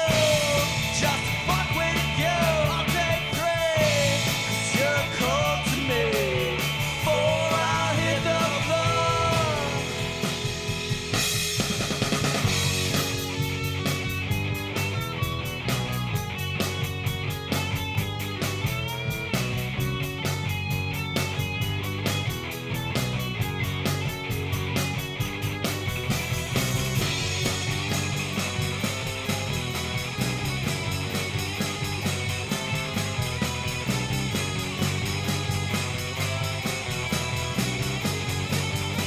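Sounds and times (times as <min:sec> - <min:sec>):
bass guitar: 0:00.0 - 0:39.0
drum kit beat: 0:00.0 - 0:39.0
electric guitar: 0:00.0 - 0:39.0.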